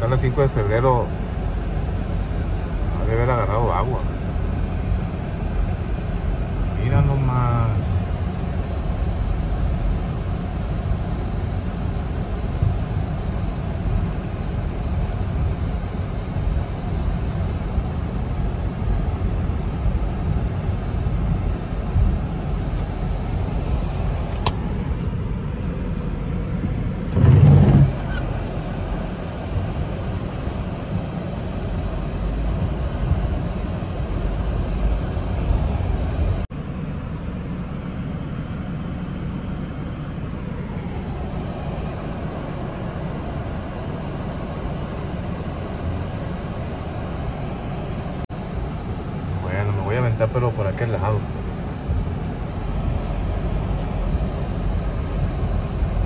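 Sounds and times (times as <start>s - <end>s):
car driving through water: 27.0s - 29.0s.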